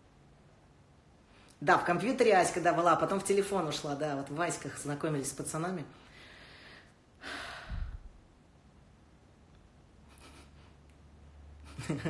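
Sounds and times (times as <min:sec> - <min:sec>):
soft breath: 0:05.9 - 0:08.2
person laughing: 0:10.0 - 0:10.8, 0:11.6 - 0:12.0.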